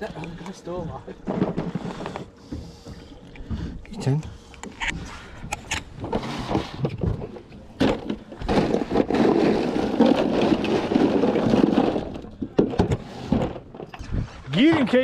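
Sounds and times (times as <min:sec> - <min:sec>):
ice crunching and rustling: 0:07.8 - 0:15.0.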